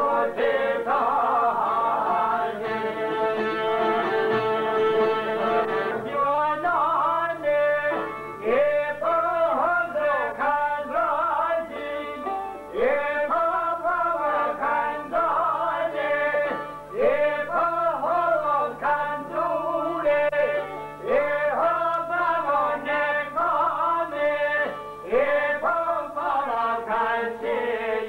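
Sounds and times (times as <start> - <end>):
man singing folk melody: 0.0 - 28.0
plucked long-necked lute: 0.2 - 9.3, 14.8 - 17.8
plucked long-necked lutes: 1.6 - 6.5.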